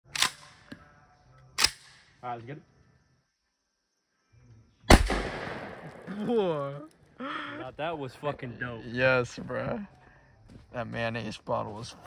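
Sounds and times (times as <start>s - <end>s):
rifle shots: 4.9s - 6.2s.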